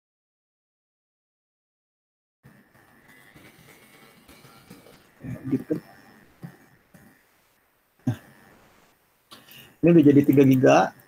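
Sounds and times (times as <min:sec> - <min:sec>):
person clearing throat: 0:08.1 - 0:08.3.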